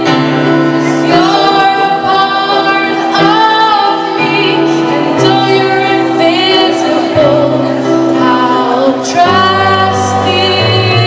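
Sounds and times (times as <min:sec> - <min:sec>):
electronic keyboard chords: 0:00.0 - 0:11.0
woman singing into a microphone: 0:00.0 - 0:11.0.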